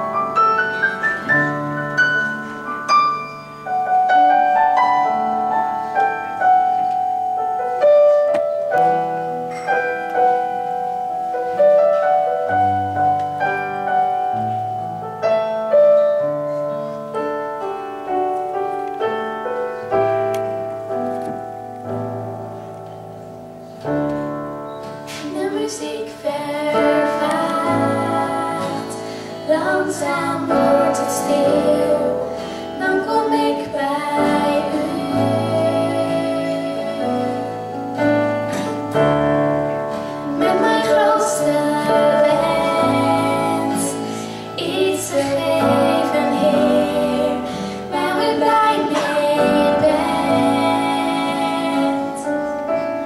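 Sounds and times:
slow piano notes and chords: 0.0 - 53.0
women singing: 25.2 - 37.8, 40.3 - 52.5.

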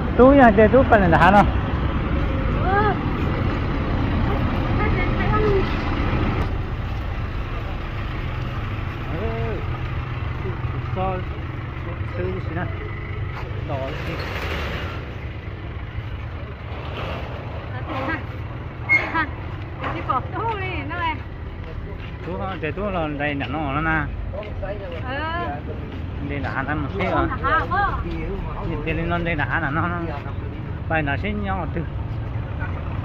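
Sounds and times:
vehicle engine rumbling: 0.0 - 33.0.

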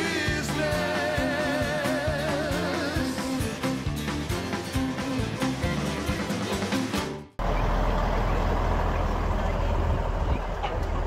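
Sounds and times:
heavy truck engine idling: 7.4 - 11.0.

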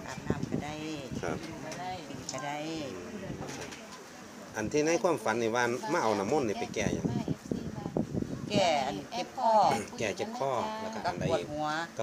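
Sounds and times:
woman speaking: 0.0 - 3.2, 7.1 - 12.0.

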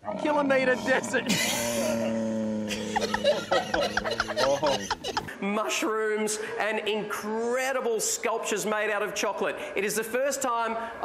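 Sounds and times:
man chuckling: 0.9 - 5.4.

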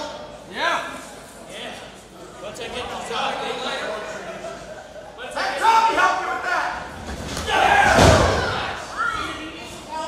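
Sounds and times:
wrestler hitting ring mat: 7.1 - 8.7.

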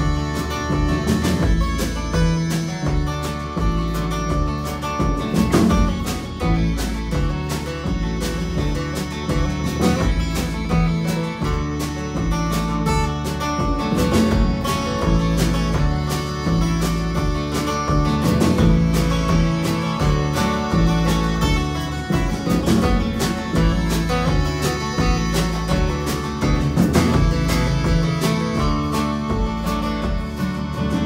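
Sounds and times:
acoustic guitar strumming: 0.0 - 31.0
upright bass walking line: 0.0 - 31.0.

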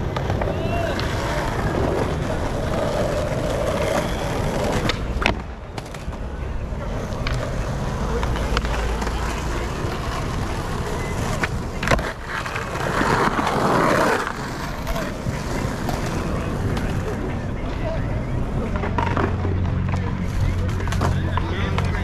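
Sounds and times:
skateboard clacking on ground: 0.0 - 22.0
skateboard wheels rolling on asphalt: 0.0 - 22.0.

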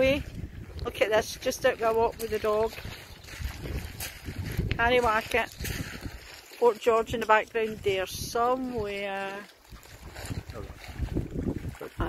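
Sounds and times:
wind gusting against microphone: 0.0 - 6.4, 9.7 - 12.0.

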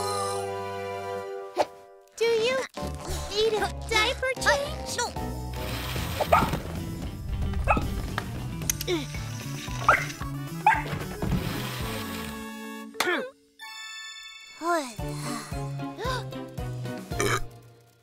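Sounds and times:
upbeat children's music: 0.0 - 5.5
dog barking: 6.3 - 6.6, 9.9 - 10.9.

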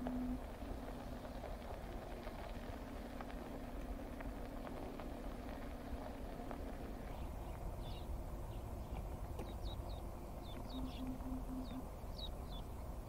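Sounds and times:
steady low rumble: 0.0 - 13.0
small birds chirping: 7.0 - 12.9.

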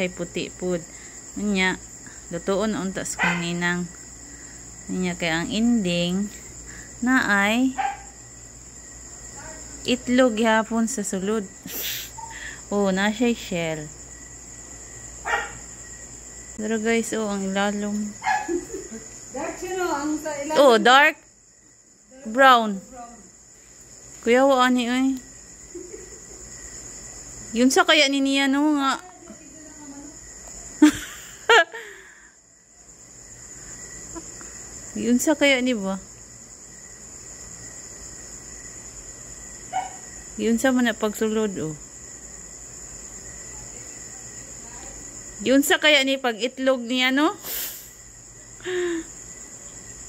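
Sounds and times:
crickets chirring: 0.0 - 50.0.

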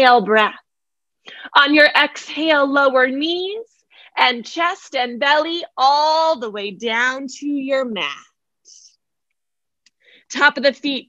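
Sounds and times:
woman speaking: 0.0 - 0.6, 1.3 - 8.9, 10.3 - 11.0.

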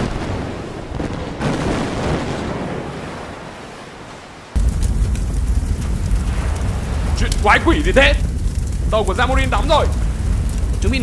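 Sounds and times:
explosion blasts with rumble: 0.0 - 3.4, 4.6 - 11.0.

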